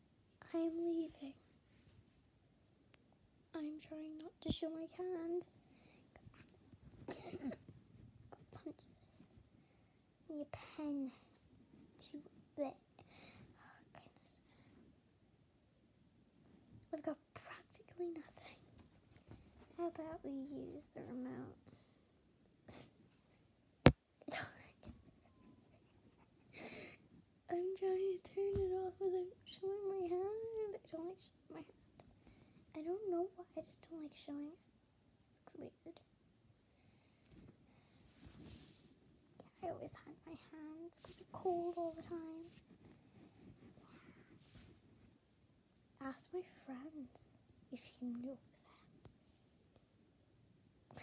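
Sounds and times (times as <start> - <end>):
faint soft noise: 0.0 - 51.0
girl whispering: 0.4 - 1.5, 13.5 - 14.4, 24.2 - 25.0, 39.4 - 42.6, 46.0 - 49.0.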